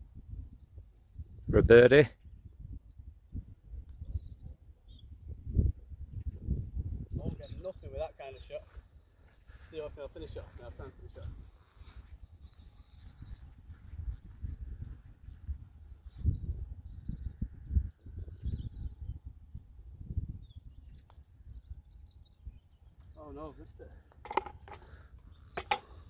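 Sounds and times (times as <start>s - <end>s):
wind buffeting microphone: 0.0s - 26.0s
faint bird chirps: 2.2s - 9.4s.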